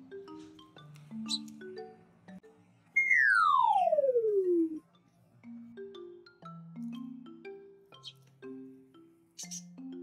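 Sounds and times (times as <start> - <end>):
mallet-like background music: 0.0 - 10.0
comedic falling whistle: 3.0 - 4.8.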